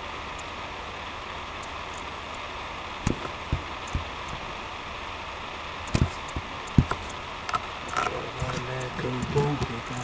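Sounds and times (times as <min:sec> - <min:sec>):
steady background hiss: 0:00.0 - 0:10.0
dull thumps: 0:03.0 - 0:04.5, 0:05.9 - 0:07.1.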